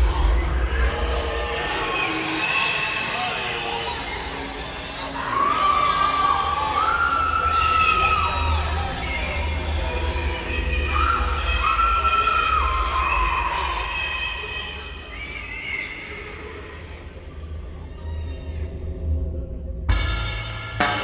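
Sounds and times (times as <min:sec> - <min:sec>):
pigs squealing: 0:01.0 - 0:16.3
low droning music: 0:16.9 - 0:21.0.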